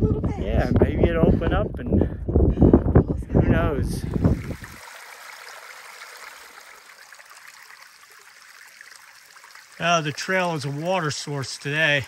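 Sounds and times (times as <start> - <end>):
water trickling over rocks: 4.0 - 12.0.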